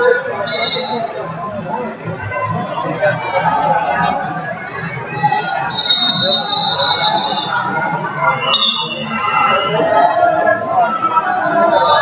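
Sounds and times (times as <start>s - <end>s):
crowd chatter in a hall: 0.0s - 12.0s
referee whistle: 0.4s - 1.2s, 5.6s - 9.8s.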